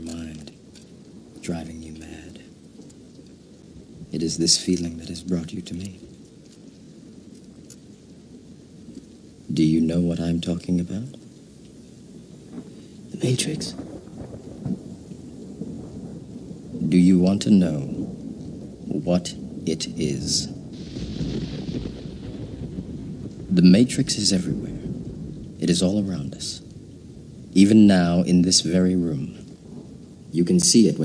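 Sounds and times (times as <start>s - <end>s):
faint steady rain: 0.0s - 31.0s
low thunder rumble: 0.0s - 31.0s.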